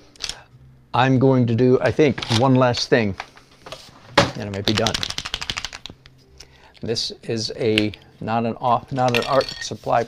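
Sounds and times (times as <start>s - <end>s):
correction pen ball rattling: 4.5s - 6.0s.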